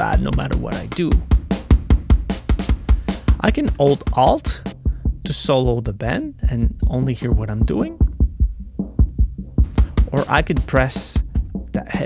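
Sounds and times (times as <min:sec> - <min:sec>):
heavy kick drum thumps: 0:00.0 - 0:11.8
fast hi-hat and snare hits: 0:00.0 - 0:12.0.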